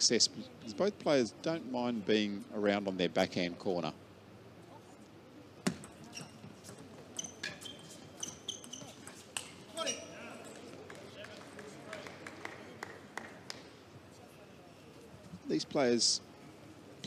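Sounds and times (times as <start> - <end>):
shoes squeaking on floor: 5.7 - 10.7.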